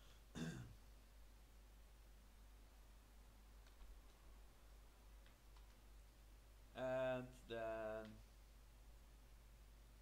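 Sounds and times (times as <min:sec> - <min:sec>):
man clearing his throat: 0:00.3 - 0:00.8.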